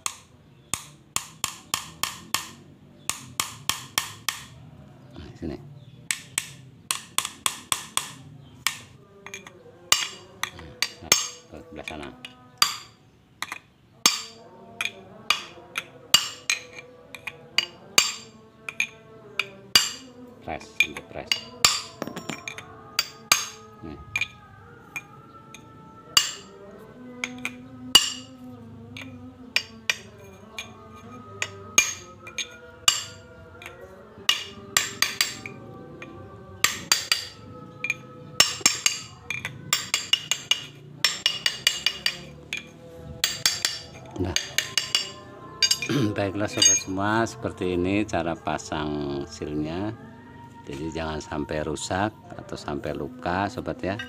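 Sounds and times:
hammer tapping steel punch: 0:00.0 - 0:04.6, 0:06.1 - 0:11.4, 0:12.2 - 0:20.0, 0:20.8 - 0:24.4, 0:26.2 - 0:26.5, 0:27.2 - 0:28.3, 0:31.4 - 0:33.2, 0:34.3 - 0:35.6, 0:36.6 - 0:46.0, 0:46.6 - 0:46.9.

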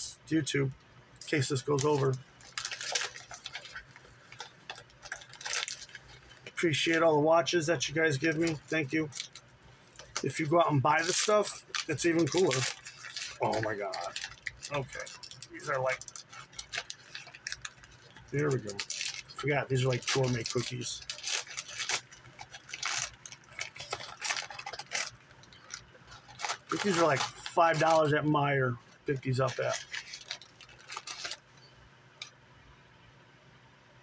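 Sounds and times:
cookie package crinkling: 0:01.2 - 0:31.7.

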